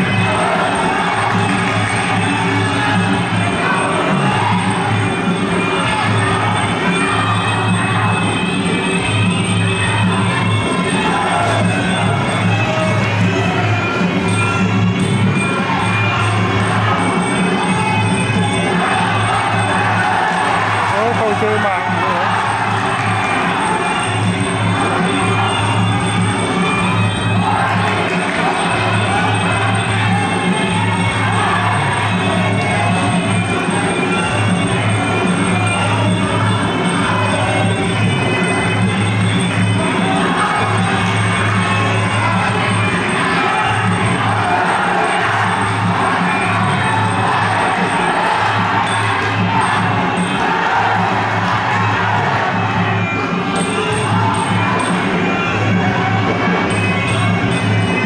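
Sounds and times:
crowd cheering: 0:00.0 - 0:58.0.

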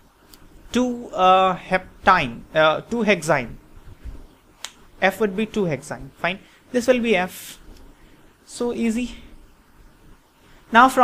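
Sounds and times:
man's voice: 0:00.8 - 0:03.6
sharp click: 0:04.6 - 0:04.8.

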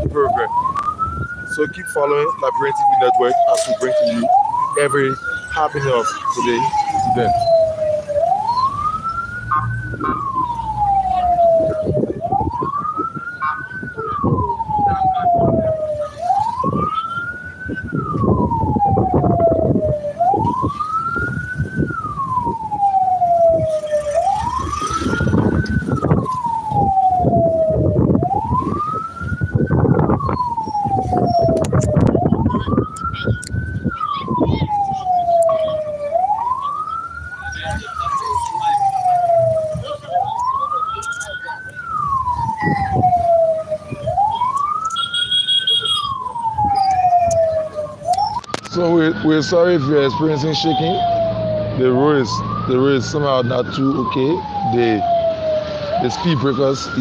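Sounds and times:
moving vehicle rumble: 0:00.0 - 0:57.0
siren wailing: 0:00.0 - 0:57.0.

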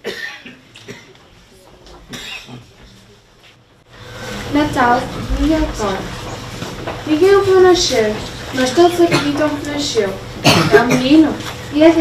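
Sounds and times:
throat clearing: 0:00.0 - 0:01.2, 0:02.1 - 0:02.8, 0:10.4 - 0:11.1
people coughing: 0:00.0 - 0:01.3, 0:02.1 - 0:02.8, 0:08.9 - 0:09.6, 0:10.4 - 0:11.3.

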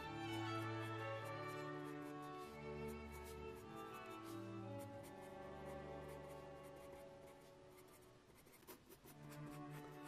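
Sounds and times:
pencil scratching on paper: 0:00.0 - 0:10.0
soft background music: 0:00.0 - 0:10.0.

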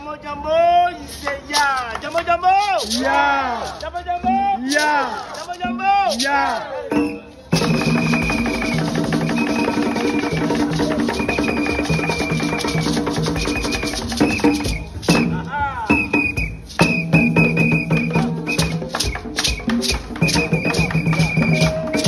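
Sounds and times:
gourd shaker: 0:01.0 - 0:22.0
hand drums playing: 0:04.0 - 0:22.0.

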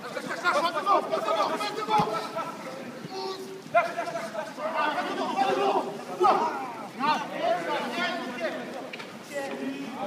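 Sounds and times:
men shouting encouragement: 0:00.2 - 0:08.3.

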